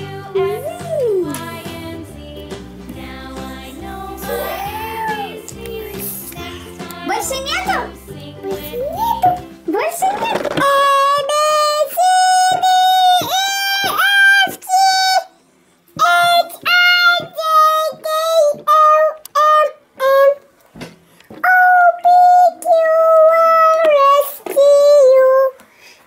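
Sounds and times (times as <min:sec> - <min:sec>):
voice singing letters in a simple tune: 0:00.0 - 0:09.5, 0:10.5 - 0:15.4, 0:16.0 - 0:20.5, 0:21.4 - 0:25.6.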